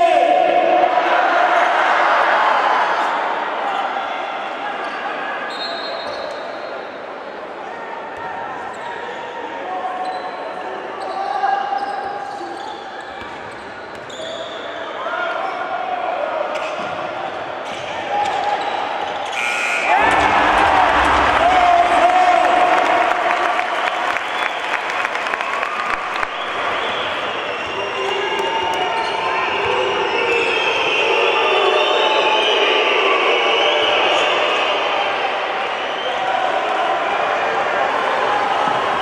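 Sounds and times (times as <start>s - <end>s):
players chattering and shouting: 0.0s - 24.5s, 26.0s - 39.0s
crowd cheering: 17.8s - 39.0s.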